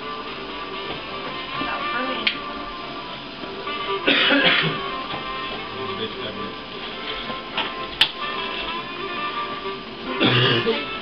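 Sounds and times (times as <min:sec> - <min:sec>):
background music: 0:00.0 - 0:11.0
person coughing: 0:04.1 - 0:04.8, 0:10.2 - 0:10.9.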